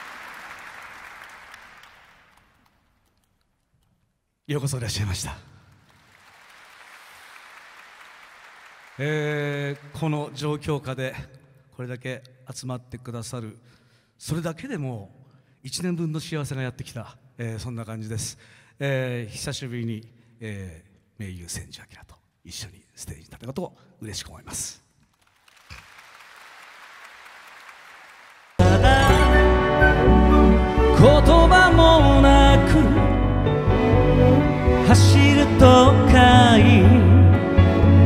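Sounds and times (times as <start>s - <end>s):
audience applauding: 0.0s - 3.1s, 5.7s - 10.1s, 25.1s - 28.7s.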